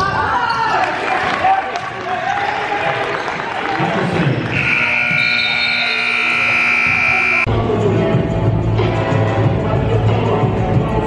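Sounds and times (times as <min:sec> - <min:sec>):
scoreboard buzzer: 0:04.5 - 0:07.5.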